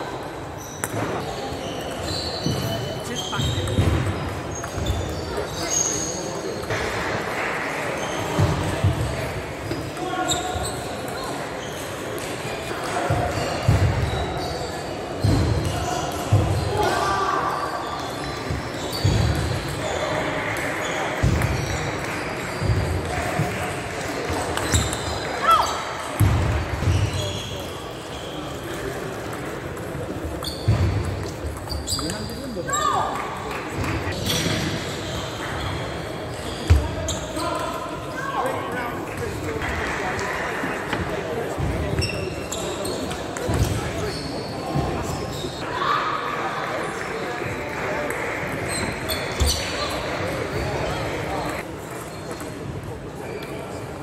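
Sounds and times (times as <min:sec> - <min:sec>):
murmur of voices: 0:00.0 - 0:54.0.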